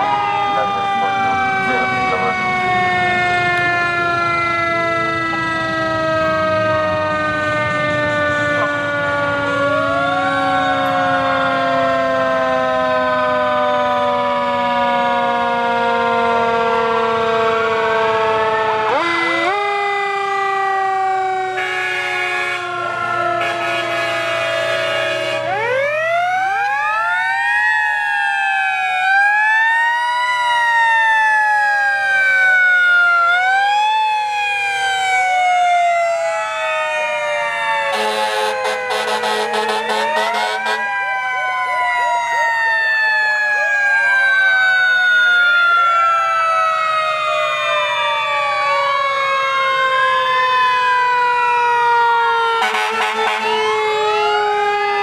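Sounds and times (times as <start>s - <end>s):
fire truck sirens wailing: 0.0s - 55.0s.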